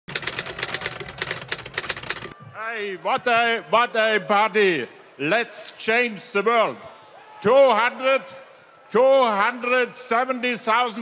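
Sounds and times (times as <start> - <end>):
rapid clatter of clicks: 0.1 - 2.3.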